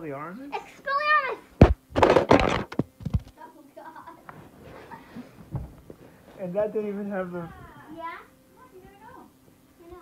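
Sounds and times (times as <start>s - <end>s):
phone landing thunk: 1.6s - 3.2s.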